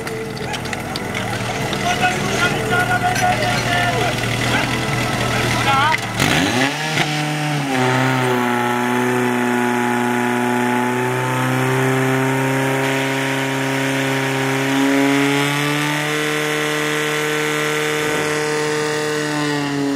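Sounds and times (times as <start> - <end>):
pump engine running at high revs: 0.0 - 19.9.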